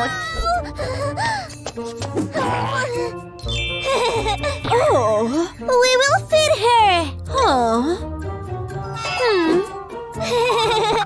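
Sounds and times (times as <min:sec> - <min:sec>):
cartoon background music: 0:00.0 - 0:11.0
bright ding chime: 0:03.4 - 0:05.2.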